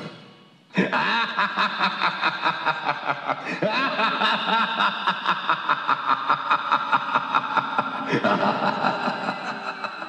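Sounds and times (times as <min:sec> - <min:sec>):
evil cackling laugh over speaker: 0:00.8 - 0:10.0.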